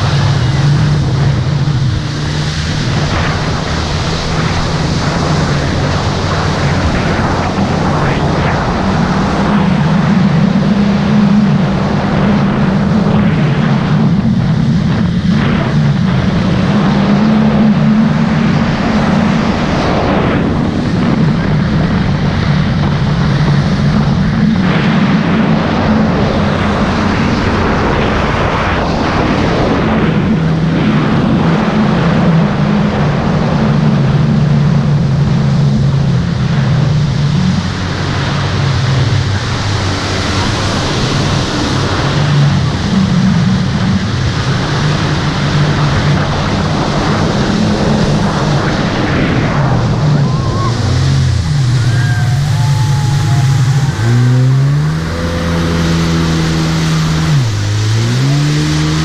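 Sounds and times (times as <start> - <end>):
water spray rushing: 0.0 - 12.2, 37.2 - 59.0
jet ski engine running hard: 0.0 - 59.0.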